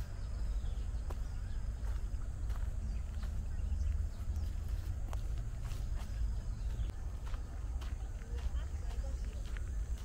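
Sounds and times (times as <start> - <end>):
footsteps on dry leaves: 0.0 - 10.0
steady low rumble: 0.0 - 10.0.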